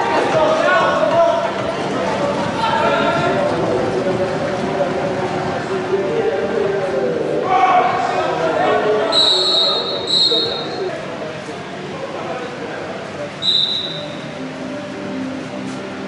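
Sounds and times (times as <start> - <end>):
indistinct voices: 0.0 - 16.0
referee's whistle blasts: 9.1 - 10.8, 13.4 - 14.2.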